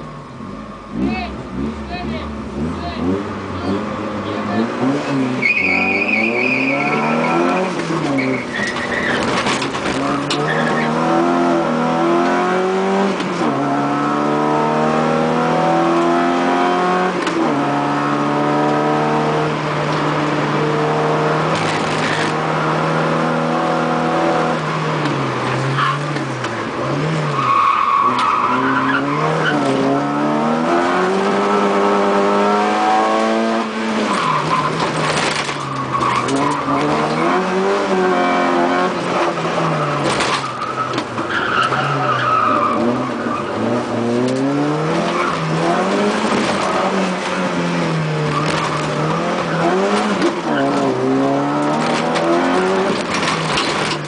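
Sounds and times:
rally car engine revving: 0.0s - 54.0s
tyre squeal: 5.3s - 11.0s, 34.1s - 37.4s, 39.6s - 43.7s.

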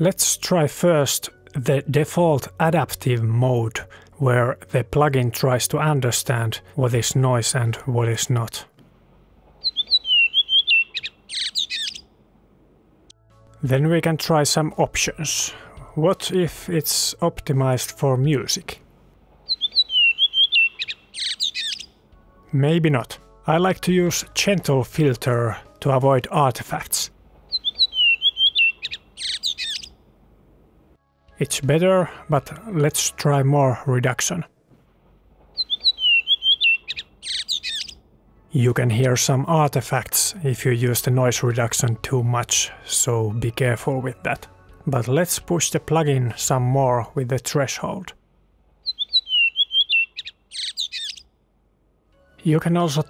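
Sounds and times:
bird singing whistled notes: 9.6s - 12.1s, 19.5s - 22.0s, 27.5s - 29.9s, 35.6s - 38.0s, 48.8s - 51.3s
bird twittering chatter: 9.6s - 12.1s, 19.5s - 21.9s, 27.5s - 30.0s, 35.6s - 38.0s, 48.8s - 51.3s.

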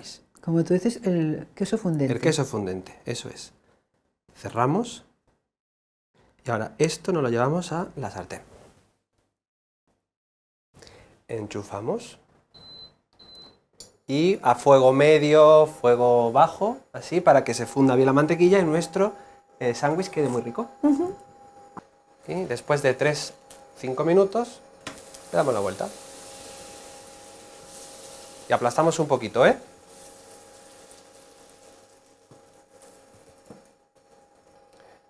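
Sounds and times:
induction hob beeps: 12.6s - 13.6s
faint steady whine: 14.1s - 35.0s
butter sizzling in a frying pan: 23.2s - 35.0s.

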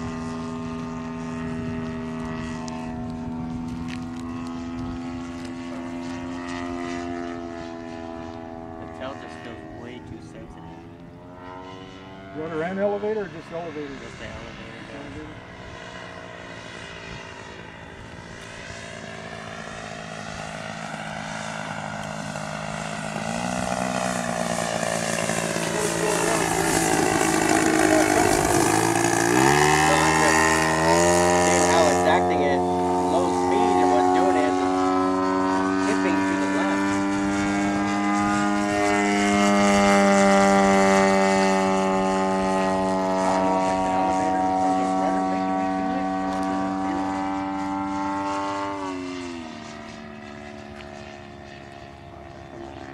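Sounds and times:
model plane engine droning overhead: 0.0s - 52.9s.

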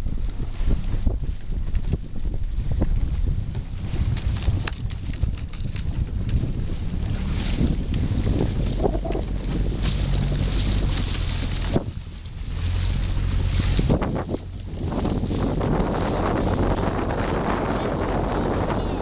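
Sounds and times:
boat engine hum: 0.0s - 19.0s
wind buffeting microphone: 0.0s - 19.0s.

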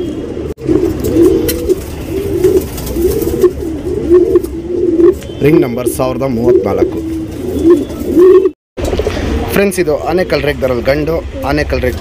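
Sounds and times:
pigeons cooing: 0.0s - 10.6s.

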